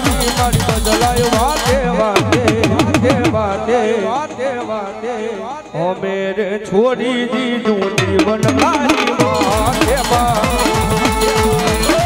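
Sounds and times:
singing with accompaniment: 0.0 - 12.0
hourglass drum roll: 1.1 - 4.5.

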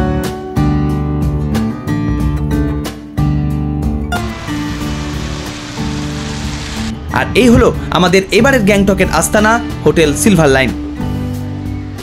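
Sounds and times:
rain hiss: 4.2 - 7.0
music with low held notes: 4.2 - 12.0.

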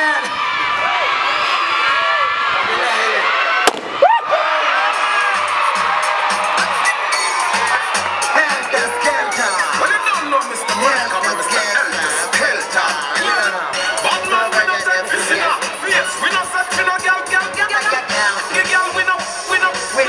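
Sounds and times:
children shouting and cheering: 0.0 - 20.0
balloon bursting: 3.6 - 4.2
music with steady beat: 5.2 - 20.0.

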